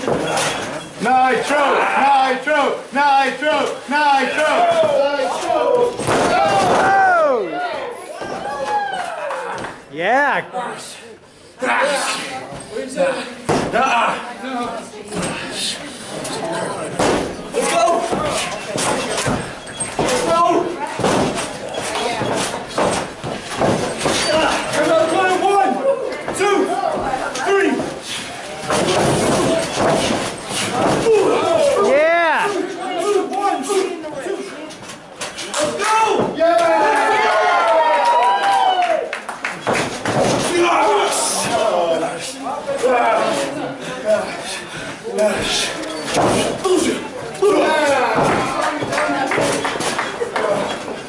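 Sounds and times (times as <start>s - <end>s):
wrestlers slapping and thudding: 0.0s - 2.4s, 3.2s - 7.4s, 13.4s - 14.2s, 16.1s - 34.0s, 34.7s - 37.8s, 39.3s - 42.0s, 45.2s - 51.0s
voices: 0.0s - 51.0s
crowd shouting: 4.0s - 9.6s, 35.8s - 39.1s
body slamming into ring corner: 6.0s - 6.9s.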